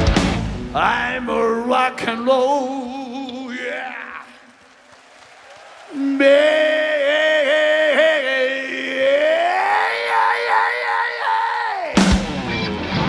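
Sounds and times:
man singing long vibrato note: 0:00.8 - 0:04.4, 0:05.9 - 0:12.0
rock band crashing in: 0:12.0 - 0:13.0.

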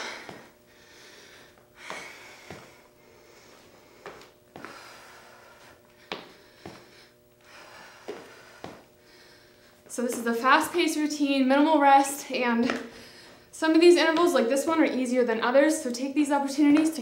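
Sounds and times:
foot landing thud: 0:01.8 - 0:02.8, 0:04.0 - 0:04.9, 0:06.0 - 0:06.9, 0:07.9 - 0:08.9.

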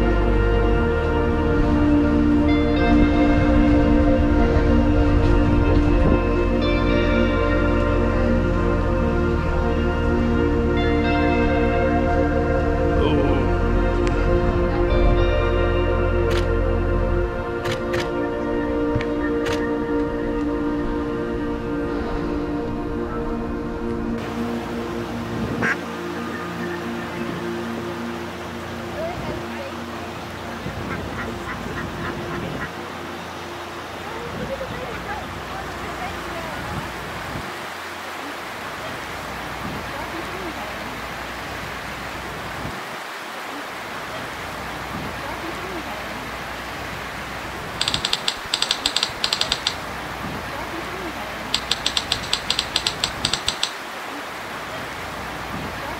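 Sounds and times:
background music with held notes: 0:00.0 - 0:42.8
river rapids rushing: 0:24.1 - 0:55.9
duck quacking: 0:30.7 - 0:32.8
typewriter key clacks: 0:47.8 - 0:49.8, 0:51.6 - 0:53.8.

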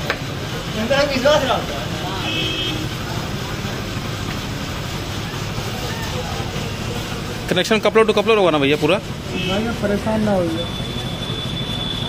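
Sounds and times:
street traffic noise: 0:00.0 - 0:12.0
faint voices: 0:01.5 - 0:08.0.

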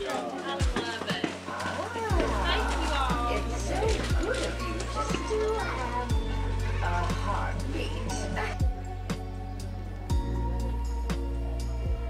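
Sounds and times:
people talking: 0:00.0 - 0:08.7
music: 0:00.0 - 0:12.0.

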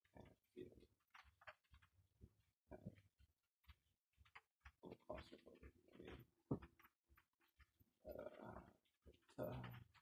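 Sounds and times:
low throaty sounds: 0:08.0 - 0:08.8.

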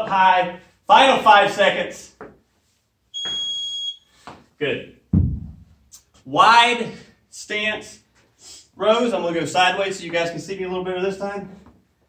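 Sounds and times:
long electronic beep: 0:03.2 - 0:04.1.

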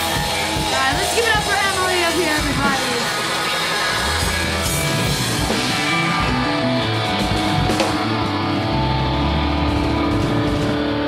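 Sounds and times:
distorted electric guitars chord: 0:00.0 - 0:11.0
drums hitting: 0:00.0 - 0:11.0.

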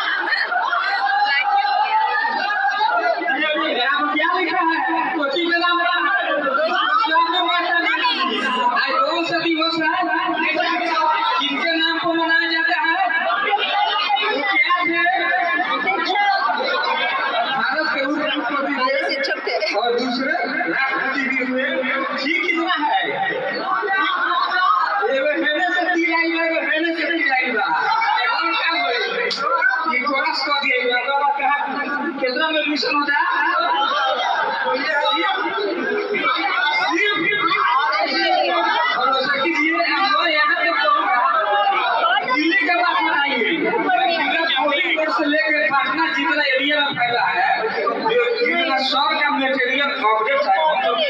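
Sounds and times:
people talking over one another: 0:00.0 - 0:51.0.

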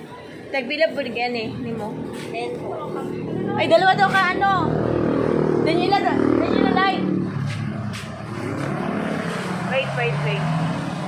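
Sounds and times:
faint background voices: 0:00.0 - 0:08.2
street traffic: 0:00.0 - 0:11.0
woman talking: 0:00.5 - 0:04.9, 0:05.6 - 0:07.2, 0:09.6 - 0:10.6
motor vehicle running nearby: 0:01.5 - 0:11.0.

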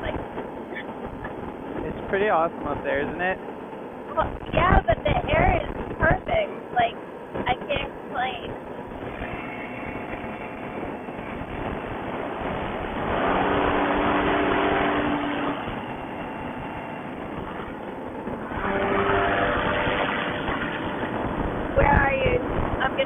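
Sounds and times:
rushing noise: 0:00.0 - 0:23.0
two-stroke engine droning: 0:09.0 - 0:17.8.

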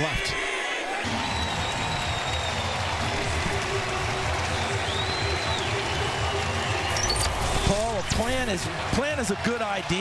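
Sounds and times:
applause: 0:00.9 - 0:07.0, 0:08.2 - 0:10.0.

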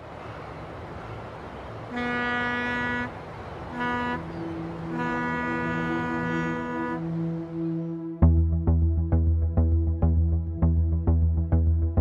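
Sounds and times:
second ship horn: 0:01.9 - 0:08.0
ship horn blasts: 0:01.9 - 0:08.2
steady low rumble: 0:07.0 - 0:12.0.

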